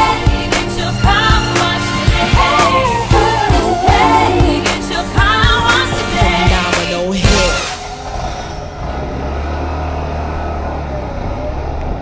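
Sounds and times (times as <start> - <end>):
scooter engine pulling away: 7.8 - 12.0.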